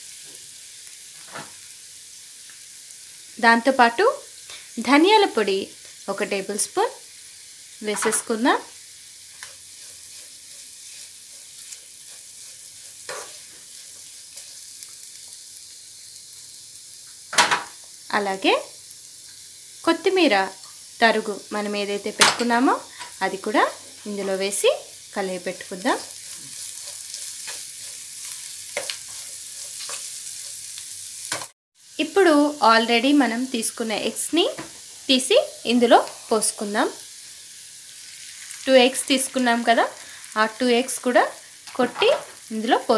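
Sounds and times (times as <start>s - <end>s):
food sizzling in a pan: 0.0s - 42.9s
woman speaking: 3.4s - 4.2s, 4.8s - 7.0s, 7.8s - 8.7s, 18.1s - 18.7s, 19.9s - 26.1s, 32.0s - 37.0s, 38.7s - 42.9s
spatula scraping a pan: 9.3s - 14.7s, 26.0s - 31.5s.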